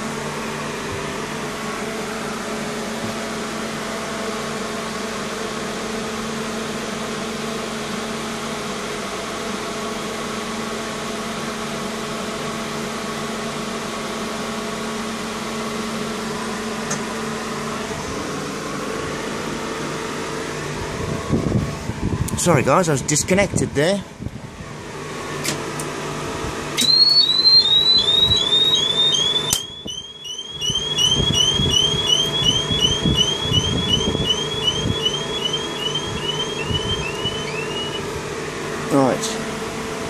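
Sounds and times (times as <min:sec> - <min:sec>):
electrical hum and whir: 0:00.0 - 0:40.0
steady electronic tones: 0:27.2 - 0:38.1.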